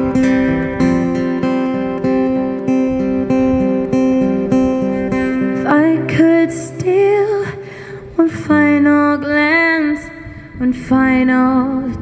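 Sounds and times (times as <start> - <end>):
acoustic guitar: 0.0 - 12.0
young woman singing: 5.0 - 12.0.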